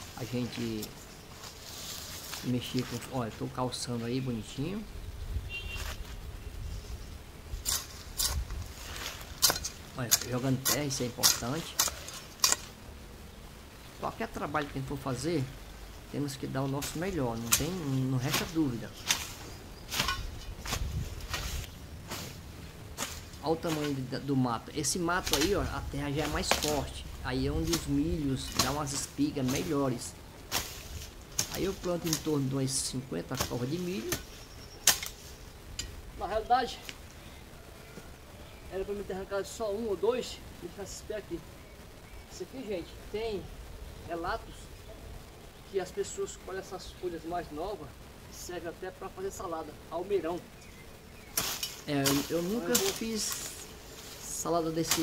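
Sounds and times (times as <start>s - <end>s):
hoe scraping soil: 0.0s - 3.4s, 6.8s - 12.8s, 16.6s - 24.1s, 24.9s - 32.4s
hoe chopping into soil: 16.8s - 22.4s, 25.2s - 26.9s, 27.6s - 29.8s, 30.5s - 32.3s, 33.4s - 35.2s, 51.3s - 53.5s.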